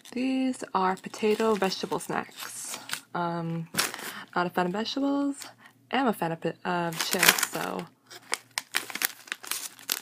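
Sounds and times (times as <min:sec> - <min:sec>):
plastic snack bag crinkling: 0:00.9 - 0:03.0, 0:06.9 - 0:10.0.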